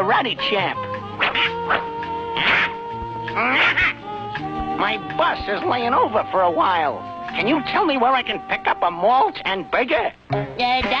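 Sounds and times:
held background music chord: 0.0s - 10.6s
cartoon vocal sound: 1.2s - 5.3s.

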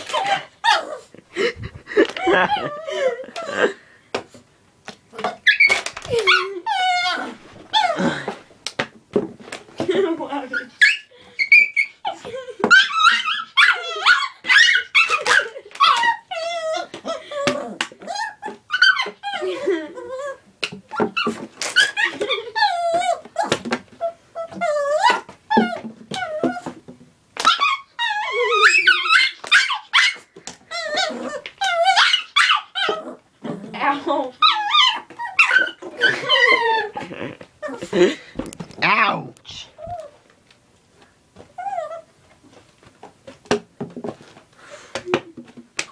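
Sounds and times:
small dog whining: 0.0s - 1.1s, 2.1s - 3.7s, 5.1s - 8.4s, 10.6s - 26.8s, 27.4s - 33.6s, 34.4s - 38.0s, 39.5s - 40.2s, 41.6s - 42.1s.

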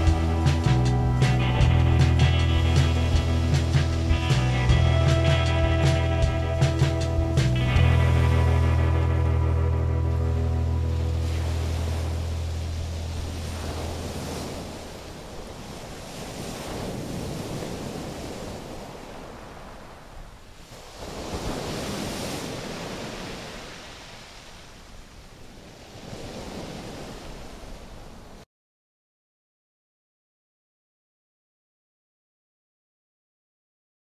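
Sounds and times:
background music: 0.0s - 13.8s
ocean surf breaking: 0.0s - 28.4s
wind on microphone: 0.0s - 28.4s.

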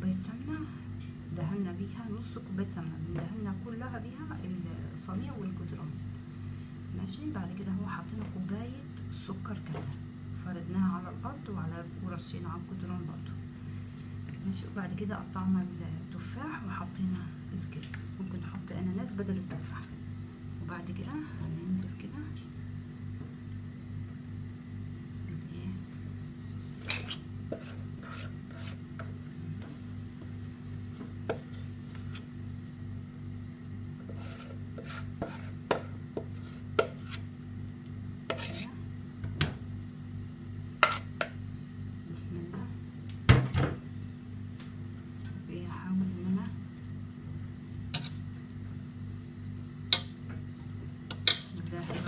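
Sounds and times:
steady low hum: 0.0s - 52.0s.

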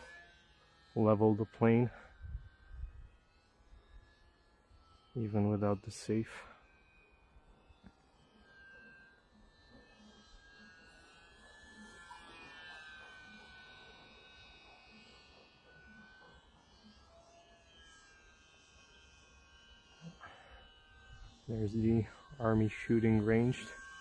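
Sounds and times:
faint electric motor whine: 0.0s - 24.0s.

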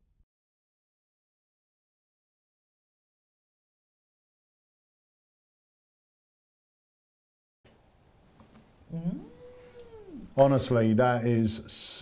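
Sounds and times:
long vocal call sliding up: 8.9s - 10.4s.

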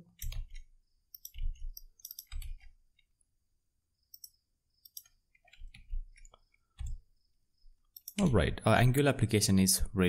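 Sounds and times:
mouse and keyboard clicks: 0.2s - 3.1s, 4.1s - 7.0s, 7.9s - 8.2s.

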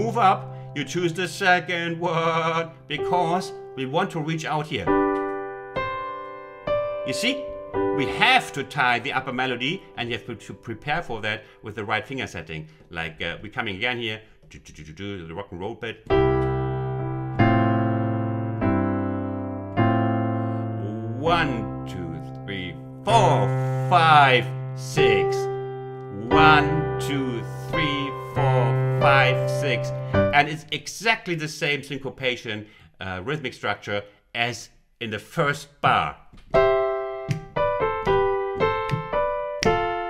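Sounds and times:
piano chords ringing: 0.0s - 12.9s, 16.0s - 30.7s, 36.5s - 40.0s.

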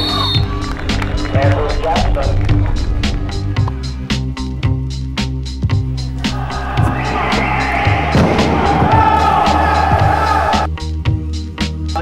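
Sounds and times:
sustained bass: 0.4s - 10.6s
drum beat: 5.7s - 10.7s.

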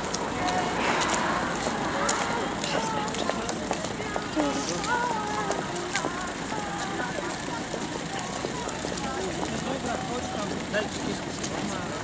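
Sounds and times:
indistinct chatter: 0.0s - 12.0s
shuffling footsteps on pavement: 0.0s - 12.0s.

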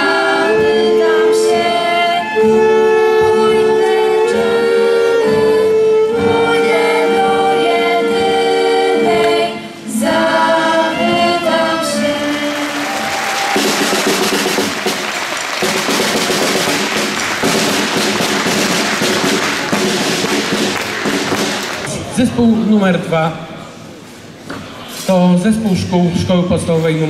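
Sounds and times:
choir with instrumental ensemble: 0.0s - 21.9s
audience applause: 12.1s - 22.2s.

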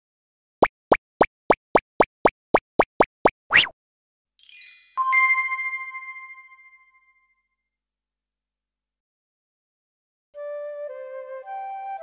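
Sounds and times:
cartoon plops: 0.6s - 3.8s.

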